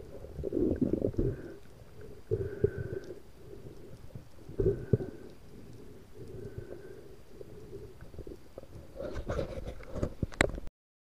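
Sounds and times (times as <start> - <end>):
muffled underwater rumbling: 0.0 - 10.6.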